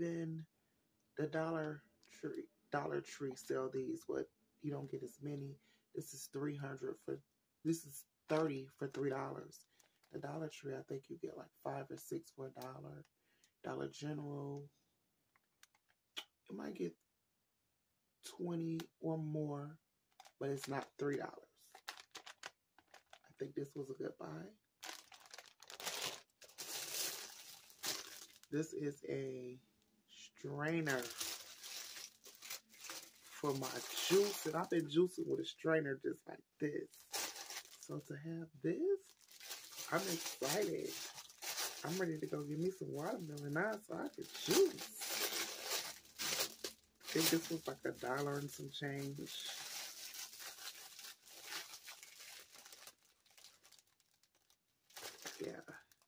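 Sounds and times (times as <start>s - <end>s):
plastic packaging crinkling: 9.7s - 10.1s, 20.1s - 21.1s, 21.7s - 23.3s, 24.8s - 28.6s, 30.6s - 35.0s, 36.9s - 38.0s, 39.0s - 56.0s.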